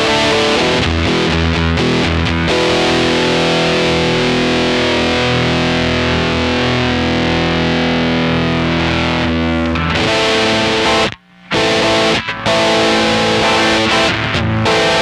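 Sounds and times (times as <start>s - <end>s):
fuzzy distorted electric guitar: 0.0s - 15.0s.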